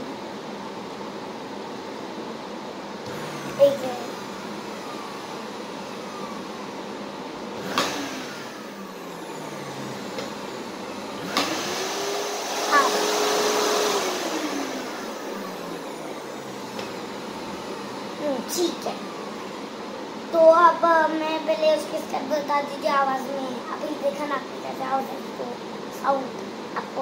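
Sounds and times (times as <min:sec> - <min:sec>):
vacuum cleaner motor whining: 0:00.0 - 0:21.6.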